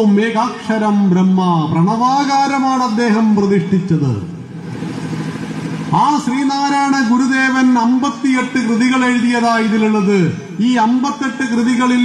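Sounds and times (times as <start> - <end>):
man speaking: 0.0 - 4.4, 5.9 - 12.0
engine humming: 4.3 - 12.0.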